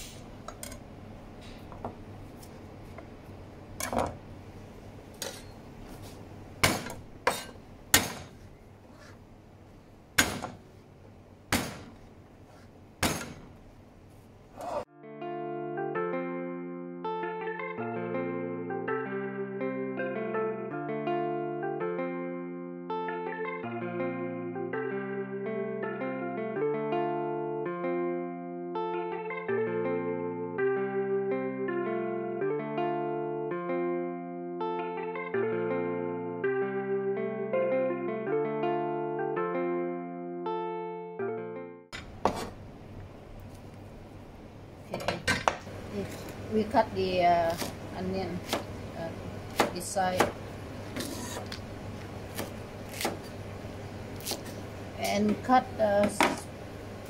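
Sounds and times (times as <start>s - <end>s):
music with plucked and keyboard notes: 14.9s - 41.9s
knife striking plastic cutting board: 49.5s - 50.4s.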